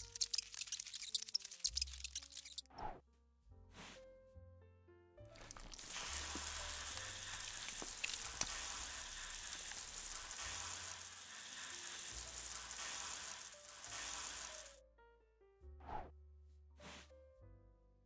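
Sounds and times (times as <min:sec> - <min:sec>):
background music: 0:01.7 - 0:18.0
water jet hissing: 0:05.4 - 0:14.8.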